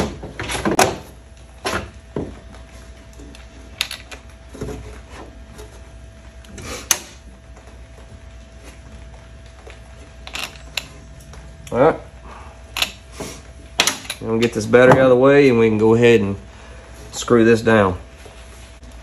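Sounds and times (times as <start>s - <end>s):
faint steady hum: 0.0s - 19.0s
knocks and clicks of wiring parts: 13.8s - 15.1s.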